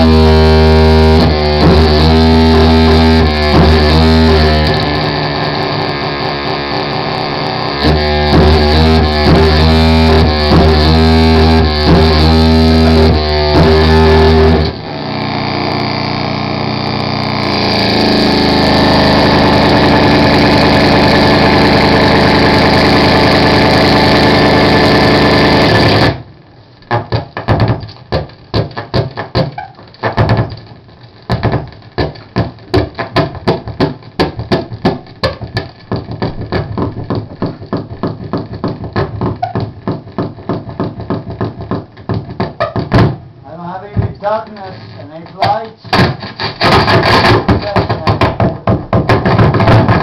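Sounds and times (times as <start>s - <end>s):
harsh electronic noise music: 0.0s - 26.1s, 43.5s - 48.4s
wavering buzz: 0.0s - 48.0s
steady hum: 0.0s - 48.6s
distorted noise drone: 0.0s - 50.0s
sharp knocks and clicks: 26.8s - 43.3s, 45.3s - 50.0s.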